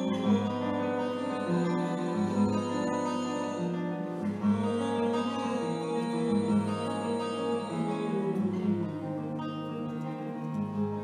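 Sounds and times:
solo classical guitar: 0:00.0 - 0:11.0.

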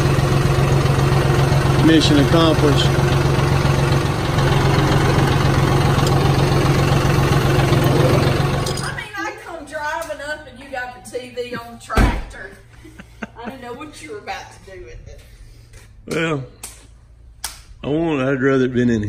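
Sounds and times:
diesel tractor engine idling: 0:00.0 - 0:09.1
loud thump: 0:12.0 - 0:12.4.

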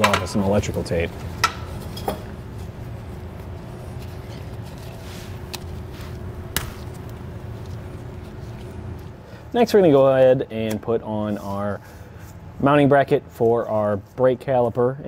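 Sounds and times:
low room hum: 0:00.0 - 0:15.0
tape peeling: 0:02.6 - 0:09.2.

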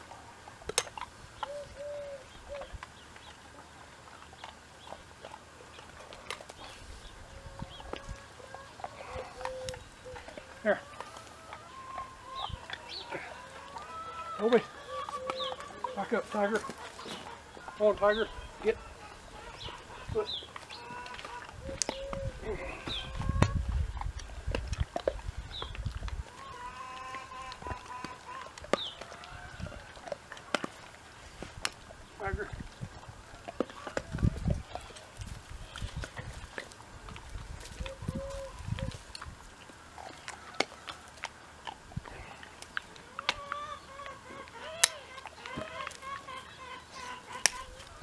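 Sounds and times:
chickens clucking: 0:04.9 - 0:30.8, 0:32.2 - 0:48.0.

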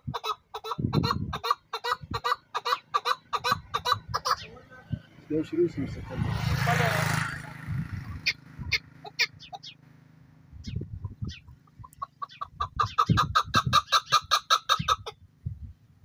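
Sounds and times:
partridge clucking calls: 0:00.0 - 0:04.7, 0:08.1 - 0:09.8, 0:10.6 - 0:15.2.

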